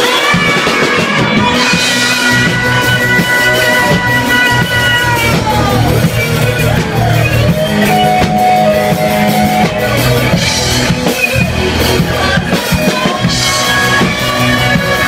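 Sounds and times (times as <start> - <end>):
drum kit: 0.0 - 15.0
electric guitars: 0.0 - 15.0.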